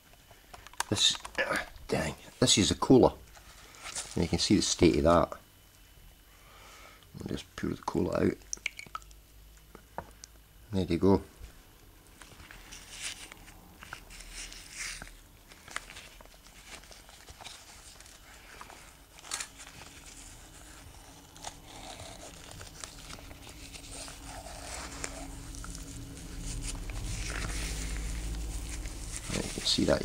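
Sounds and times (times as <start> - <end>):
wire wool rustling and crinkling: 12.2 - 30.0
low rumble: 23.9 - 29.7.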